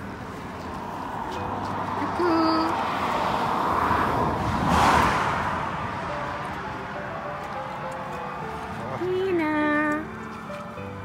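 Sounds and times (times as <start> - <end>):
vehicle passing on highway: 0.0 - 11.0.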